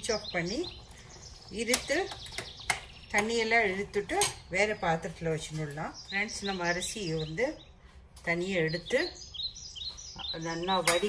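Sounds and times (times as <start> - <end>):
metal spoon clinking against pot: 4.1 - 4.5.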